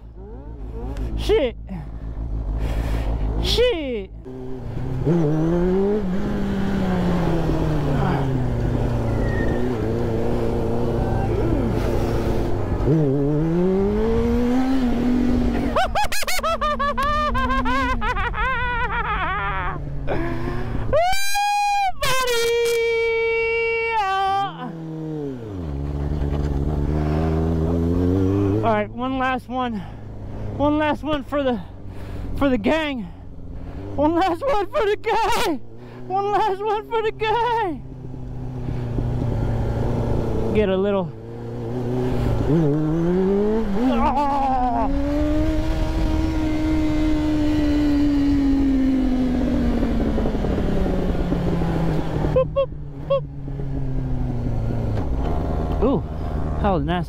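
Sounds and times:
motorcycle engine revving: 0.0s - 15.8s, 24.5s - 34.8s, 35.4s - 56.9s.

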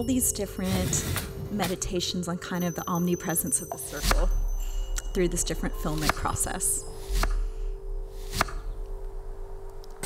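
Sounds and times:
low drone: 3.9s - 10.0s.

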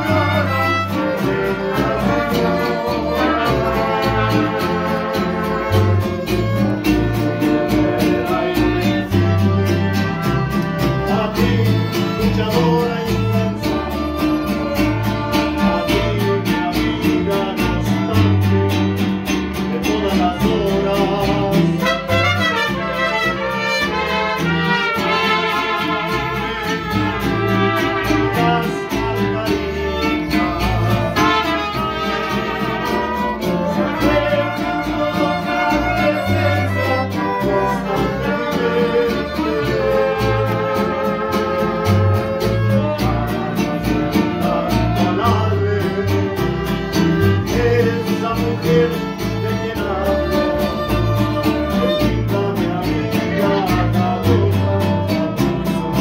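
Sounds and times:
mariachi band playing: 0.0s - 56.0s.

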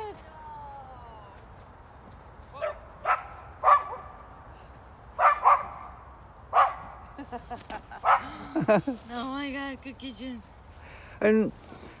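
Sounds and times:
dog barking: 2.6s - 4.2s, 5.2s - 5.9s, 6.5s - 7.0s, 8.0s - 8.3s.

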